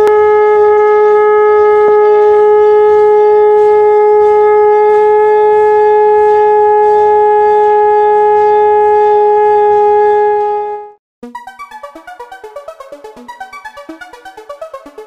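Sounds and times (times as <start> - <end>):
conch shell blown: 0.0 - 11.0.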